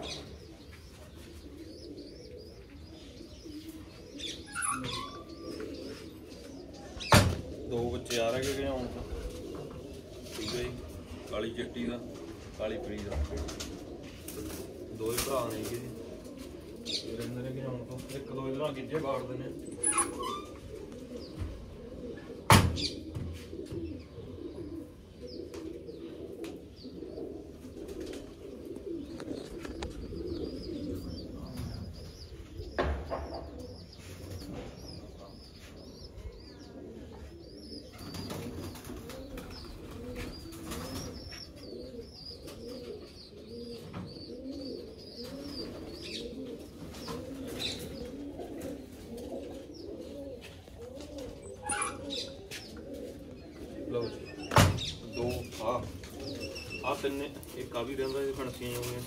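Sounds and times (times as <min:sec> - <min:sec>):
pigeons cooing: 0:00.0 - 0:59.0
single knock: 0:32.8 - 0:33.4.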